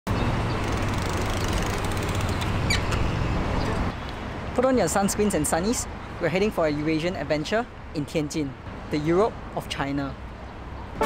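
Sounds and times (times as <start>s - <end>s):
low rumble of traffic: 0.1s - 11.0s
bicycle wheel ticking: 0.5s - 2.7s.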